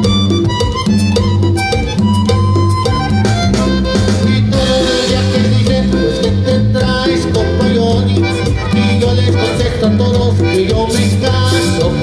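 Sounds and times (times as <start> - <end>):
button accordion playing: 0.0 - 12.0
electric bass line: 0.0 - 12.0.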